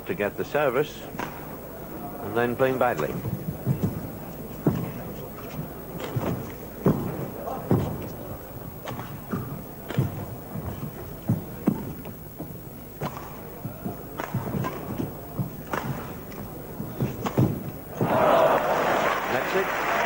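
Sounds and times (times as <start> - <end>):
rackets hitting shuttlecock: 1.1 - 1.5, 13.0 - 18.2
footfalls on court: 2.8 - 20.0
crowd applause: 18.0 - 20.0.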